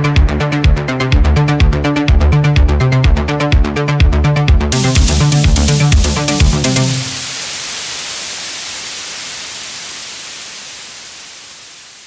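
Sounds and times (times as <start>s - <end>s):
white noise hiss: 4.7s - 12.0s.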